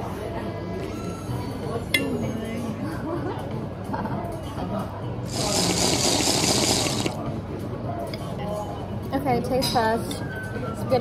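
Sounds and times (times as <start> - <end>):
glassware clinking: 1.9 - 2.4.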